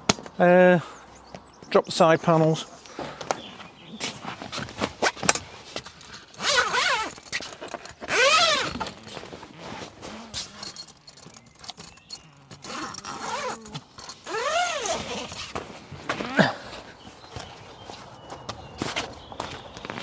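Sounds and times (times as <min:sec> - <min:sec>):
zips pulled open: 0:06.1 - 0:16.8.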